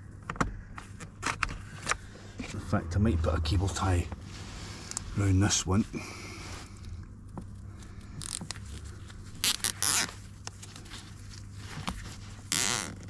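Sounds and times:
cable tie ratchet zipping: 9.4 - 10.1.

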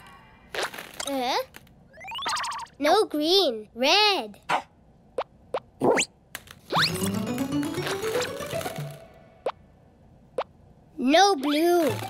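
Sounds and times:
cartoon plop: 2.0 - 2.8.

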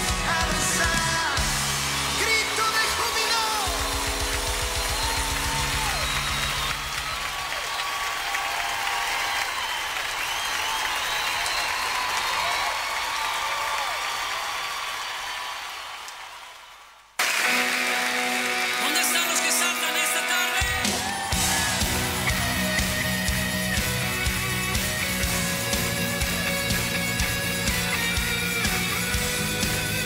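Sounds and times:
song with guitar: 0.0 - 6.2, 17.2 - 30.0
gospel song with band: 0.0 - 7.0, 17.2 - 30.0.

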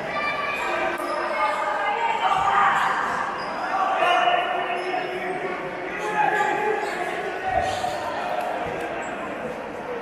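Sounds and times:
crowd voices echoing: 0.0 - 10.0.

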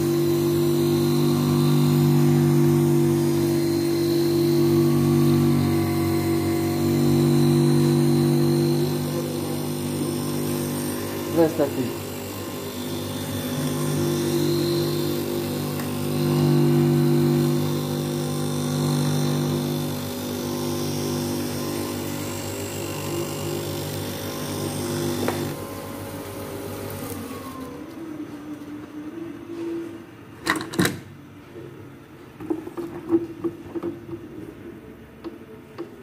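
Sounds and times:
grinding wheel hissing: 0.0 - 27.4
motor humming: 0.0 - 29.5.

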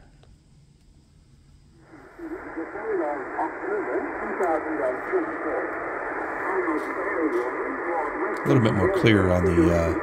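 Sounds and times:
shortwave radio static hiss: 1.2 - 10.0.

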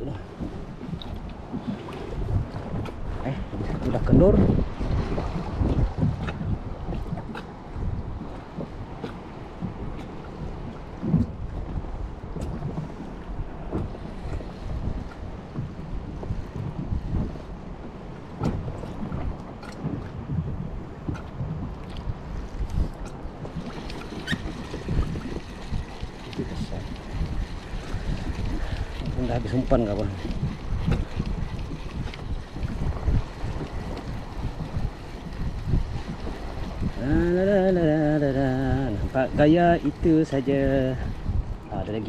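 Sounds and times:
water lapping against kayak hull: 0.0 - 42.0
wind buffeting microphone: 0.0 - 42.0.

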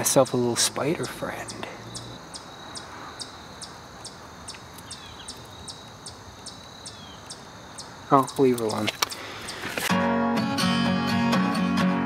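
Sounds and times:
crickets trilling: 0.0 - 9.9
insect chirps: 0.0 - 9.9.

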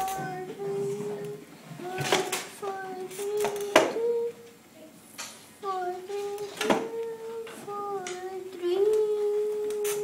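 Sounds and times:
child singing long notes: 0.0 - 4.6, 5.6 - 10.0.

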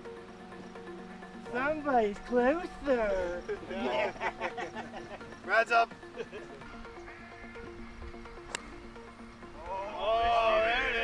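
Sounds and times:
background music of held tones: 0.0 - 11.0
golf club striking ball: 8.4 - 8.8.

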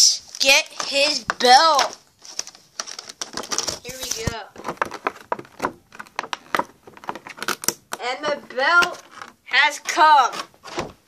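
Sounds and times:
plastic packaging crinkling: 0.2 - 7.9.

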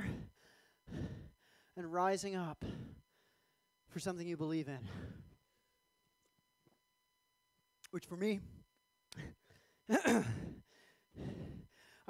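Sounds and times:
heavy breath: 0.0 - 1.8, 2.6 - 3.6, 4.8 - 5.4, 8.4 - 12.0
man sighing: 4.8 - 5.4, 9.1 - 11.8.

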